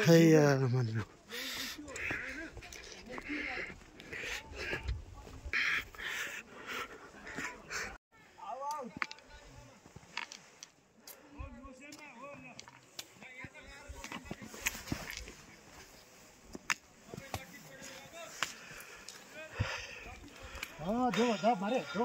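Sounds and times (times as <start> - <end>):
footsteps on stone path: 0.0 - 7.8, 8.9 - 11.2, 12.3 - 22.0.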